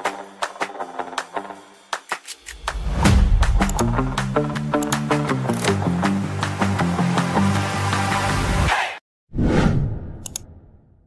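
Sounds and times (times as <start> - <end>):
sharp ticks: 3.5 - 4.0.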